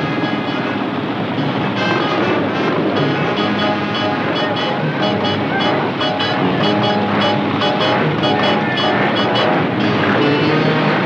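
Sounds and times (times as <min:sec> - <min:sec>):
motorcycle engines running: 0:00.0 - 0:11.0.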